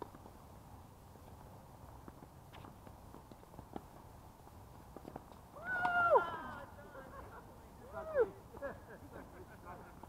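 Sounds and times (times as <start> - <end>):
loud high held cry: 5.6 - 6.8.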